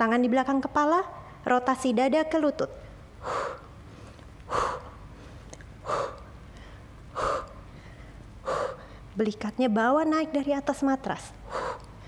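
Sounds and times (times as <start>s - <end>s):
woman's forceful breaths out: 3.2s - 9.1s, 11.4s - 12.0s.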